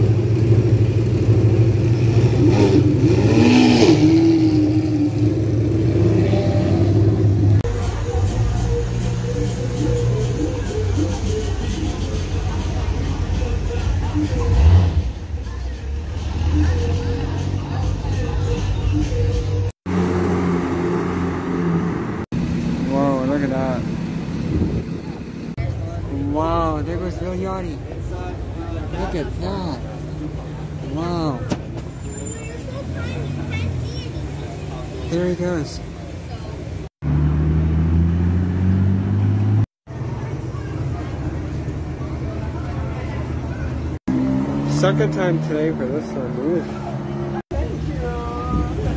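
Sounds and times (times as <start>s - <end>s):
sports car engines pulling away: 0.0s - 11.4s, 12.0s - 18.2s, 18.9s - 25.4s, 31.6s - 48.9s.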